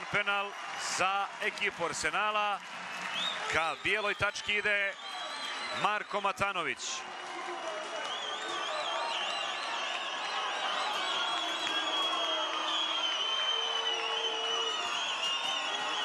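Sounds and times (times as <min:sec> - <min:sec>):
stadium crowd cheering: 0:00.0 - 0:16.0
shrill warbling whistles: 0:08.1 - 0:16.0.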